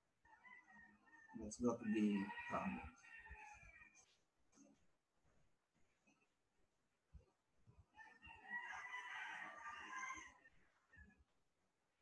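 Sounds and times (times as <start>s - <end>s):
rooster crowing: 0.2s - 4.0s, 8.0s - 11.0s.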